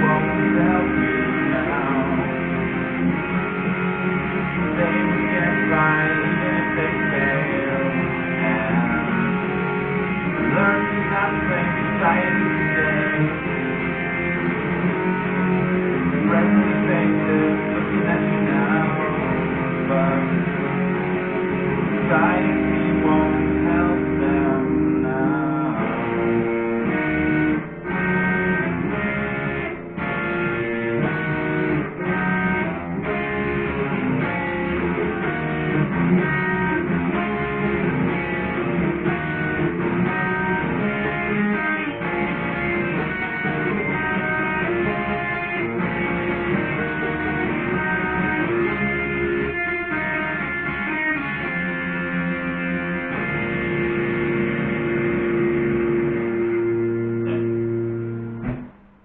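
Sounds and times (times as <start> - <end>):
electric guitar chords: 0.0 - 59.0.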